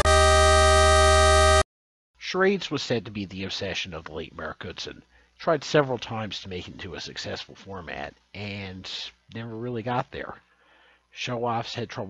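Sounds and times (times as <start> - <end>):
synthesizer chords: 0.0 - 1.6.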